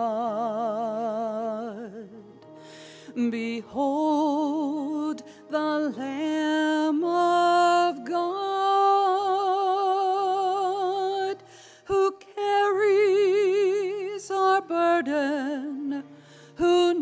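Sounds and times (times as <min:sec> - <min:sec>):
person singing a slow hymn: 0:00.0 - 0:17.0.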